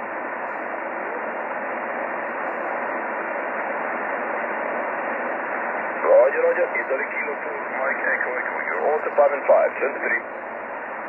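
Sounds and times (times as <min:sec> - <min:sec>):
radio receiver hiss: 0:00.0 - 0:11.0.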